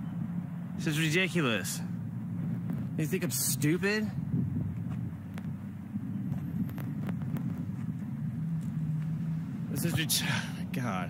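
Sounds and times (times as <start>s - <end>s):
road traffic rumble: 0.0s - 11.0s
man speaking: 0.8s - 1.9s, 3.0s - 4.2s, 9.7s - 11.0s.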